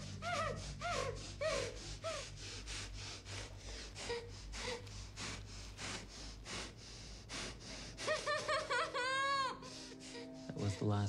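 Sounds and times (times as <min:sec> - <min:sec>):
woman panting heavily: 0:00.0 - 0:10.6
low steady hum: 0:00.0 - 0:11.0
muffled whimpers: 0:00.0 - 0:11.0.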